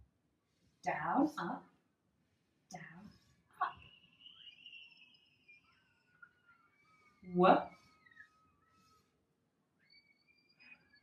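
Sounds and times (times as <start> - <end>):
marker squeaking on whiteboard: 3.1 - 9.2, 9.8 - 11.0.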